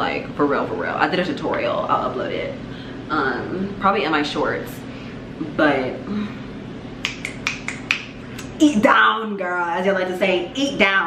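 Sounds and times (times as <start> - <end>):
fingers snapping: 7.0 - 8.5.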